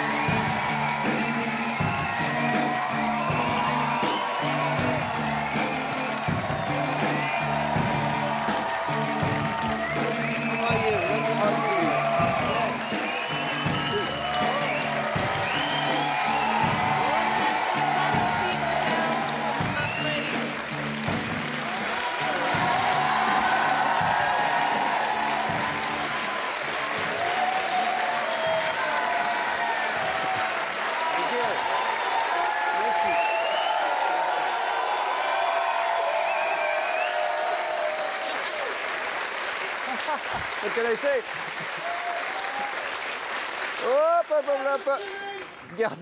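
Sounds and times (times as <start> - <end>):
whoops: 0.0 - 20.5, 21.7 - 38.8, 41.8 - 43.0
music playing: 0.0 - 38.7
audience applauding and cheering: 0.0 - 46.0.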